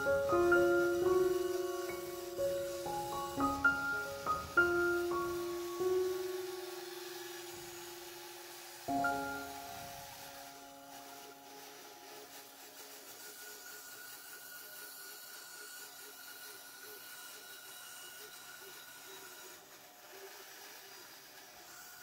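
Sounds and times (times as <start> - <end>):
band saw cutting wood: 0.0 - 22.0.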